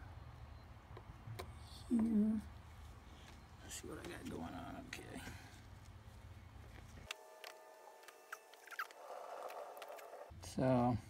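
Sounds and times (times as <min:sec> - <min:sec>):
short squeaks: 0:08.2 - 0:10.3.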